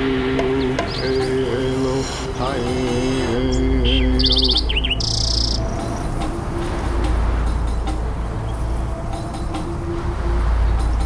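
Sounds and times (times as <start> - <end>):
low hum: 0.0 - 11.0
bird chirps: 0.2 - 11.0
bird trilling: 0.5 - 11.0
buzzy bird call: 0.5 - 11.0
held wavering musical tone: 1.1 - 11.0.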